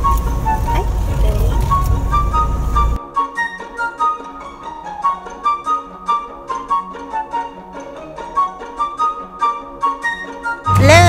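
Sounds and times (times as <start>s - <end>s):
car road and engine rumble: 0.0s - 3.0s
simple tune of high notes: 1.8s - 11.0s.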